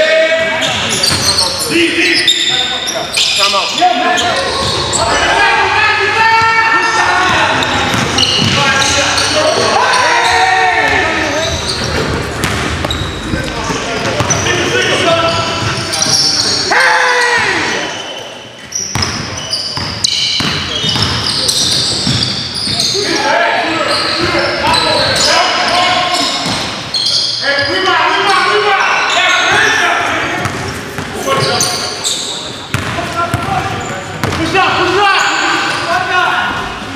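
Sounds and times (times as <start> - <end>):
players shouting: 0.0 - 18.1, 20.2 - 26.6
sneakers squeaking: 0.0 - 36.9
basketball bouncing: 7.3 - 8.6, 10.9 - 14.4, 18.9 - 22.4, 32.7 - 33.5, 34.2 - 34.4.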